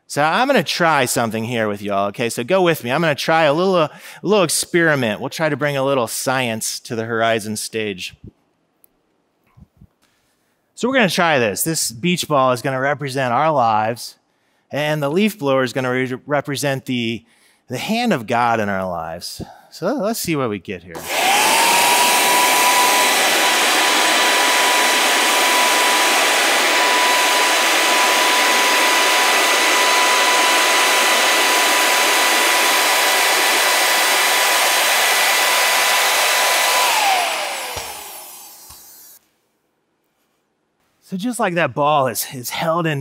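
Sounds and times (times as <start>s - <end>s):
leaf blower motor whine: 21.0s - 39.2s.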